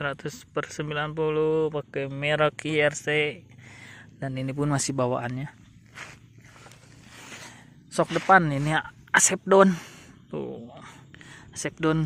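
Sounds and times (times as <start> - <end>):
faint breathing: 3.5 - 4.2, 5.8 - 8.3, 9.6 - 11.6
person speaking: 4.2 - 9.9.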